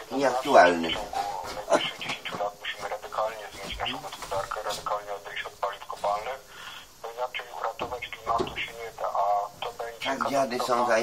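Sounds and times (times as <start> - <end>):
person talking on radio: 0.0 - 11.0.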